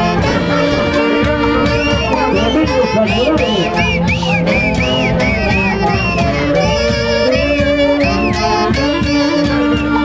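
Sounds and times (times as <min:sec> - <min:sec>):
orchestra playing: 0:00.0 - 0:10.0
saxophone melody: 0:00.0 - 0:10.0.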